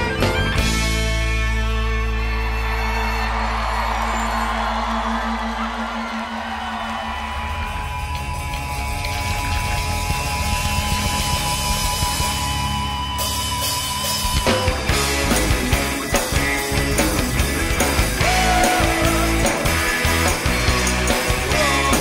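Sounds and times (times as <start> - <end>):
live band music: 0.0 - 3.0, 7.7 - 22.0
audience shouting: 2.0 - 10.0, 15.4 - 22.0.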